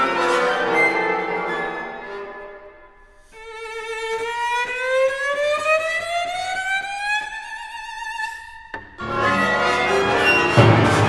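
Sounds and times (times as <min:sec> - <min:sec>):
cello glissando: 0:00.0 - 0:11.0.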